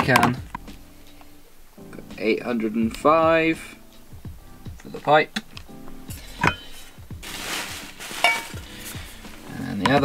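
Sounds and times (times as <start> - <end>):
music with deep beat: 0.2 - 1.3, 2.8 - 10.0
metal pipe scraping: 6.3 - 7.0, 7.7 - 9.0.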